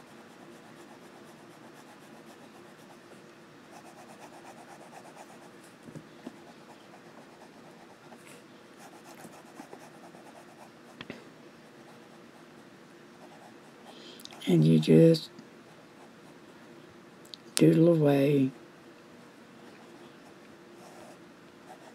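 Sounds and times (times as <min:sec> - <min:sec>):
pen nib scratching paper: 0:00.0 - 0:03.0.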